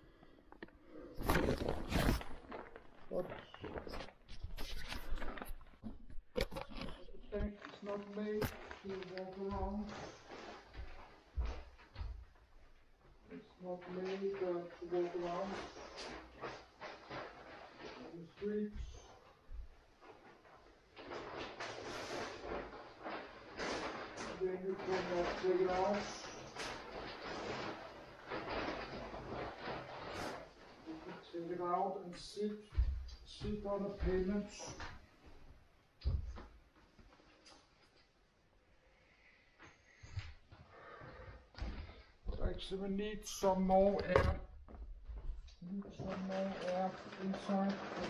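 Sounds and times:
plastic bag rustling and thudding: 1.2 - 12.6, 13.8 - 31.3, 43.9 - 48.0.

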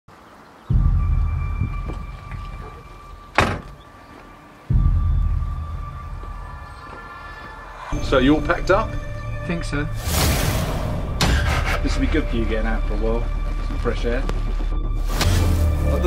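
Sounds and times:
deep boom hits: 4.7 - 6.4, 10.0 - 12.4.

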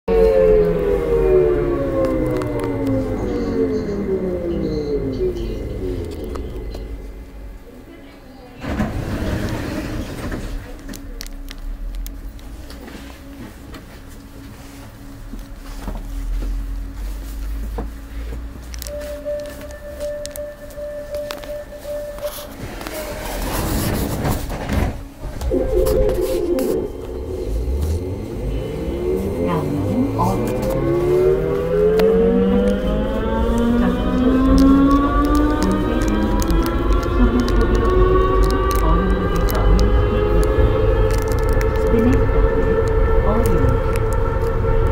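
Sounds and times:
train motor whine: 0.1 - 7.8, 18.7 - 44.9
train rushing noise: 0.1 - 7.9, 8.6 - 10.7, 18.8 - 44.9
train rumbling: 0.1 - 44.9.

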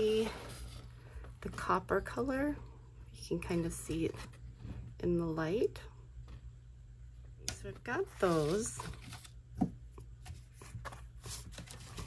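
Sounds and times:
paper rustling: 8.1 - 9.4, 10.2 - 12.0.

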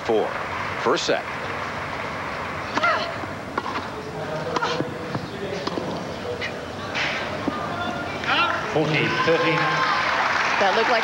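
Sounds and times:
stadium crowd hum: 0.0 - 11.0.

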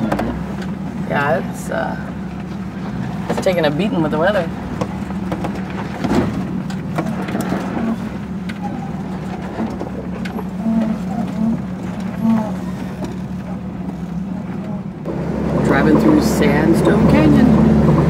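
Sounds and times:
engine running at low revs: 0.0 - 18.0
knocks and rattles from bumps: 2.2 - 14.9.

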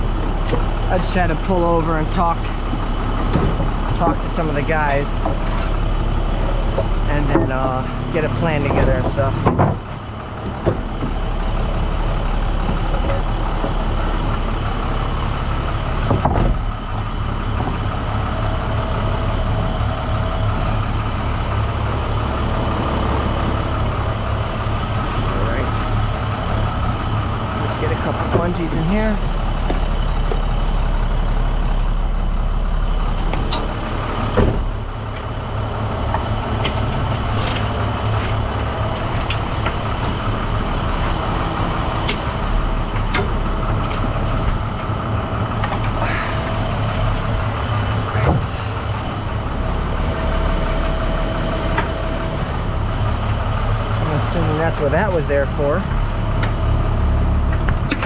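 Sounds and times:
truck engine running: 0.0 - 58.0
knocks and rattles: 2.7 - 4.4, 5.1 - 11.8, 16.0 - 18.5.

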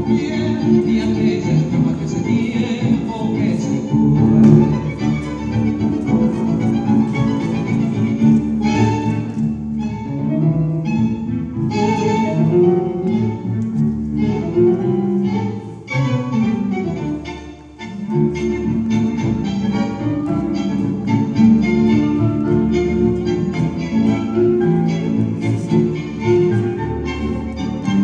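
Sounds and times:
tango orchestra music: 0.0 - 28.0.

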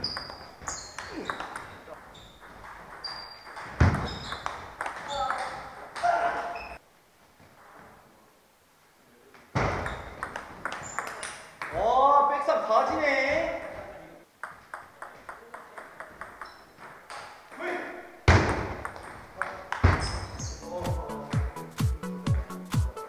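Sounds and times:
person shouting: 6.0 - 6.6
table tennis ball clicking: 9.8 - 11.7, 14.4 - 17.2.

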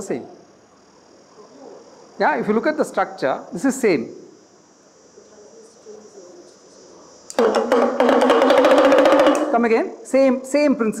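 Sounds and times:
hand drum rapid drumroll: 7.3 - 9.7.

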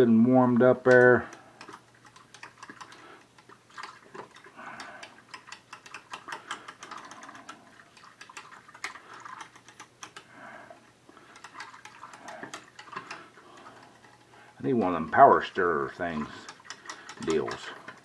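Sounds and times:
whisk scraping a saucepan: 0.8 - 10.3, 11.2 - 18.0.

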